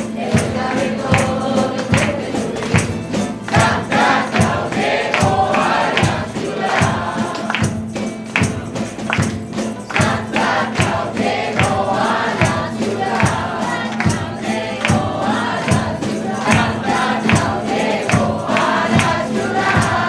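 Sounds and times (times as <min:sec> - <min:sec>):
group singing: 0:00.0 - 0:20.0
guitars and lutes playing: 0:00.0 - 0:20.0
hand clapping on a steady beat: 0:00.0 - 0:20.0.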